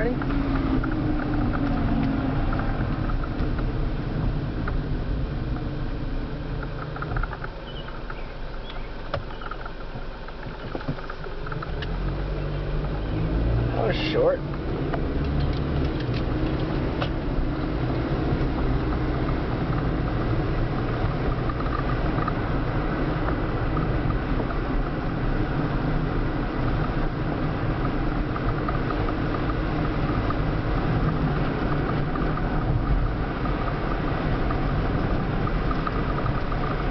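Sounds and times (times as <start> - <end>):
car road and engine noise: 0.0 - 36.9.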